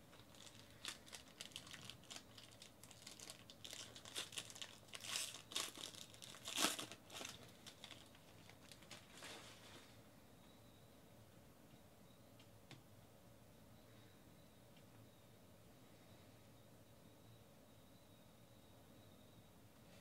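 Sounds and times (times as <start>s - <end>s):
foil wrapper crinkling and tearing: 0.1s - 9.8s.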